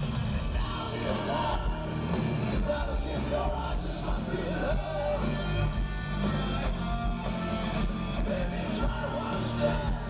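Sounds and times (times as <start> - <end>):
electric guitar: 0.0 - 10.0
hard rock band playing live: 0.0 - 10.0.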